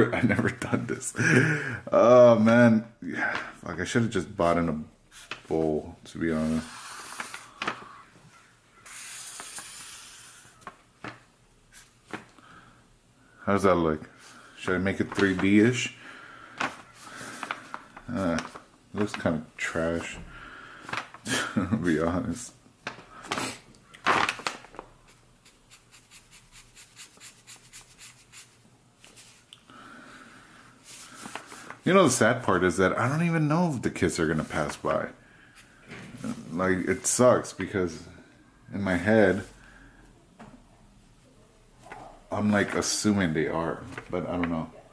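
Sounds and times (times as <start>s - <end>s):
marker scratching on paper bag: 6.6s - 7.4s, 8.8s - 10.5s, 25.4s - 28.6s.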